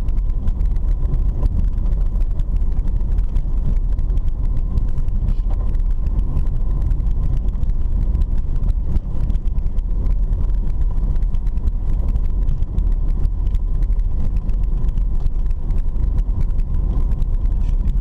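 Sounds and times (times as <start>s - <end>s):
clicks and rattles from rough road: 0.0s - 18.0s
engine and tyres rumbling: 0.0s - 18.0s.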